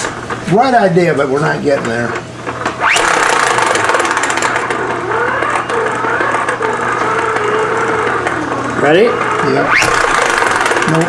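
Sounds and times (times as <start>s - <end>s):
hand crank generator gear whine: 1.6s - 11.0s
rattle of clicks: 1.8s - 8.4s, 9.8s - 11.0s.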